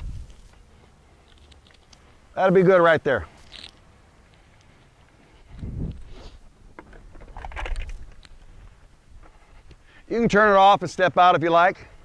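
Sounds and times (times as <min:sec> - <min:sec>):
wind buffeting microphone: 0:00.0 - 0:00.4, 0:05.4 - 0:06.2
faint footsteps on pavement: 0:00.0 - 0:12.0.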